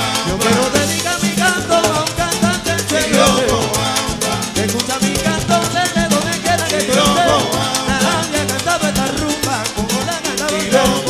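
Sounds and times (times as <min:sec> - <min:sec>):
driving bass line: 0:00.0 - 0:11.0
male voice singing: 0:00.0 - 0:11.0
percussion: 0:00.0 - 0:11.0.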